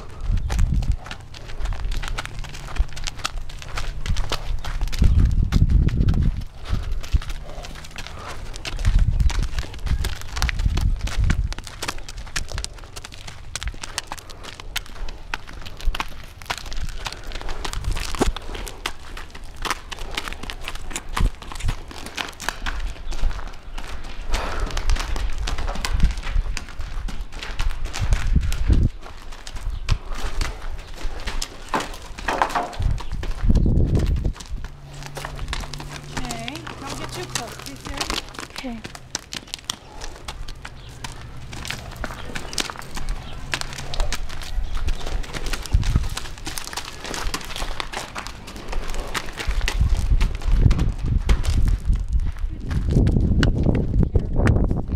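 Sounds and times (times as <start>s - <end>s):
horse hooves on hard ground: 0.0s - 54.9s
low rumbles: 0.0s - 54.9s.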